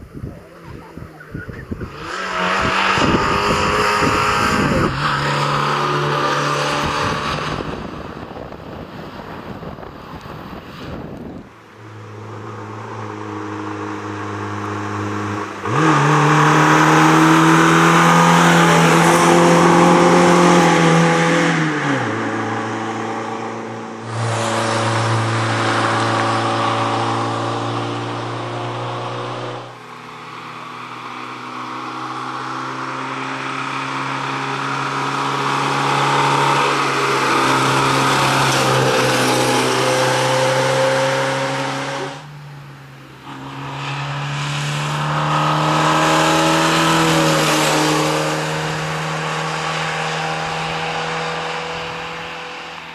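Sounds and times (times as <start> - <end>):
rally car engine driving by: 0.1 - 52.9.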